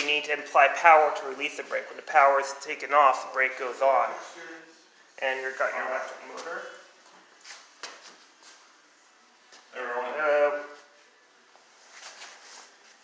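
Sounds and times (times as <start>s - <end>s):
person speaking: 0.0s - 6.9s.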